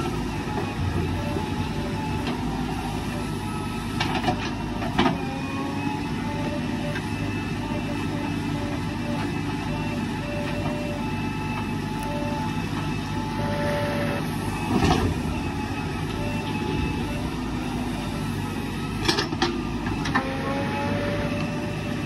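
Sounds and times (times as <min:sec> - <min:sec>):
diesel engine working under load: 0:00.0 - 0:22.0
whine shifting in pitch: 0:00.0 - 0:22.0.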